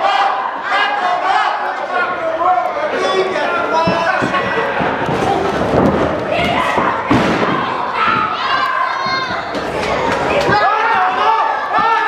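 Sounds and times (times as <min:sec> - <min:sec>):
spectators shouting: 0:00.0 - 0:05.5, 0:06.2 - 0:12.0.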